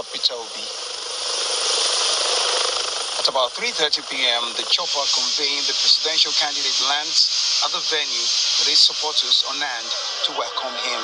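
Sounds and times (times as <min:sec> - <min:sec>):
helicopter rotor and engine: 0:00.0 - 0:11.0.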